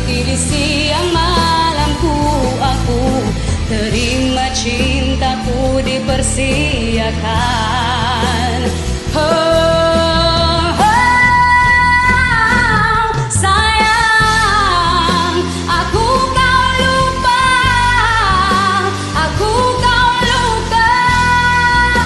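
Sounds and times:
karaoke backing track: 0.0s - 22.0s.

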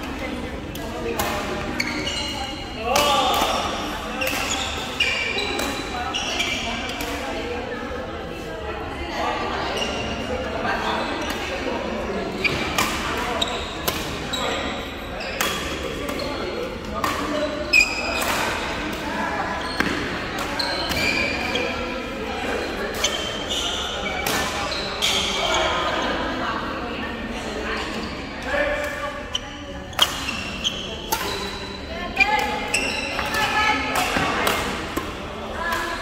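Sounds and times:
indistinct echoing voices: 0.0s - 36.0s
shoes squeaking on court: 1.3s - 7.0s, 12.4s - 16.6s, 17.2s - 26.2s, 29.2s - 36.0s
racket hitting shuttlecock: 33.2s - 36.0s.

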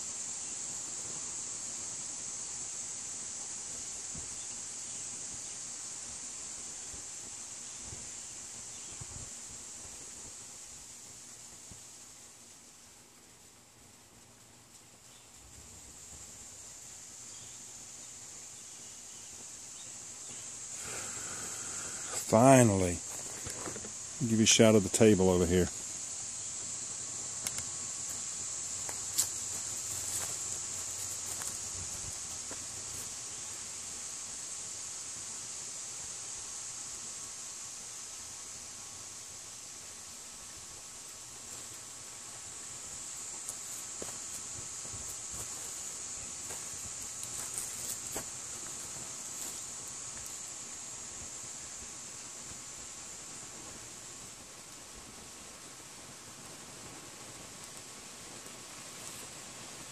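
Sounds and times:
high-pitched insect chorus: 0.0s - 59.9s
faint clicks: 27.4s - 27.7s.

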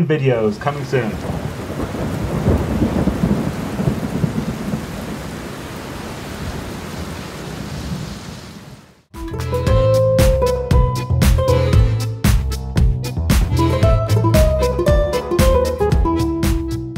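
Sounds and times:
rain hissing: 0.3s - 9.1s
thunder rumbling: 0.5s - 8.8s.

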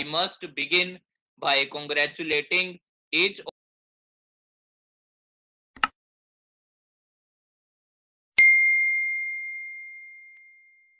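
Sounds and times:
notification bell ding: 8.4s - 10.9s.

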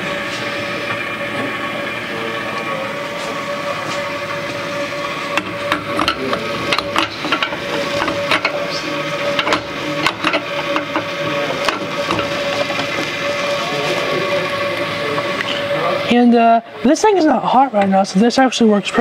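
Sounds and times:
steady mechanical hum: 0.0s - 19.0s
portafilter clicking and knocking: 5.2s - 13.4s.

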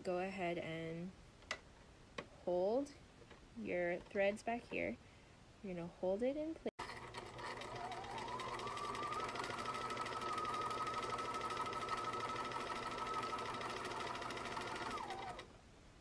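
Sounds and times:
electric sewing machine running: 6.8s - 15.5s.

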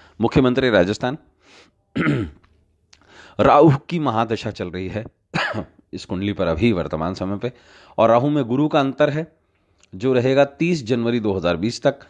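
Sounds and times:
man talking: 0.2s - 1.2s, 3.4s - 9.3s, 9.9s - 12.0s.

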